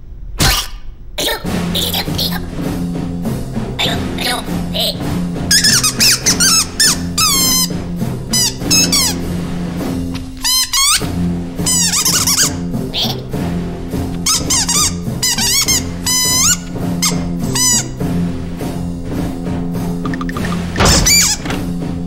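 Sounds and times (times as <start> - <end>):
cartoon background music: 0.4 - 22.0
high-pitched squeaky chattering: 3.8 - 9.2, 10.4 - 11.1, 11.7 - 13.3, 14.2 - 18.0, 20.1 - 21.5.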